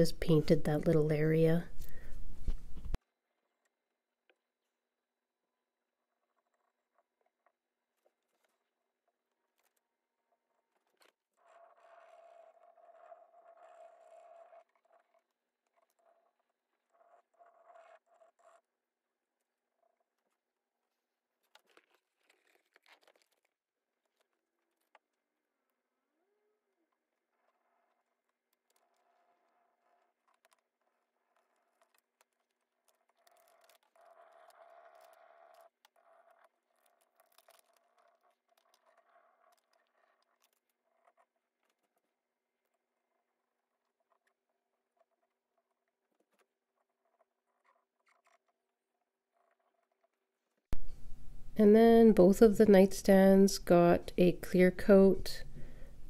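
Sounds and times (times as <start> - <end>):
stick rubbing on plastic sheet: 9.3 - 18.8, 19.4 - 25.1
plastic sheet rubbing and crinkling: 19.9 - 25.1.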